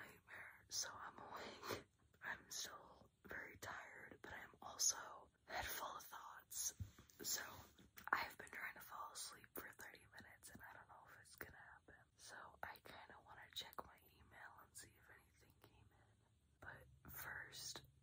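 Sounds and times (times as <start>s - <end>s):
woman whispering: 0.0s - 17.9s.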